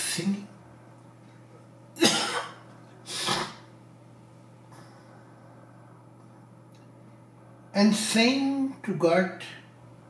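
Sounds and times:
man coughing: 2.0 - 3.6.

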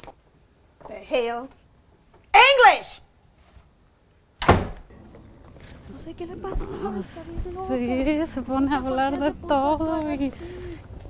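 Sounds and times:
front door slamming: 4.4 - 5.1.

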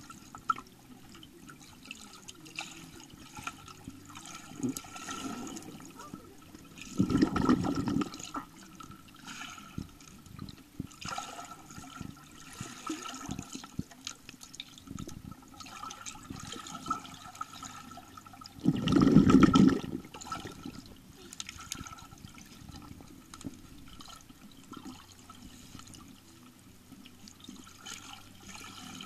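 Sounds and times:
muffled underwater sloshing and bubbling: 0.0 - 29.0
rush of water and bubbles: 0.0 - 29.0.

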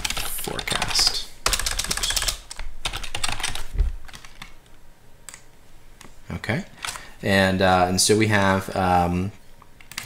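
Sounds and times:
keyboard typing: 0.0 - 4.6, 9.8 - 10.0.

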